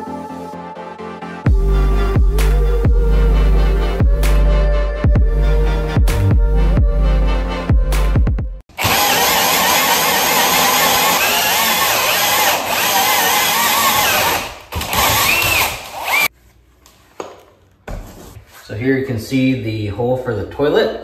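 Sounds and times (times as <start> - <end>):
drill cutting through plywood: 8.7 - 16.3.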